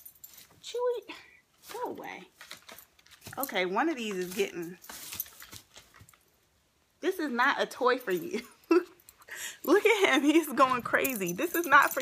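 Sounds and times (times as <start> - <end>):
dog rustling packaging: 1.6 - 6.5.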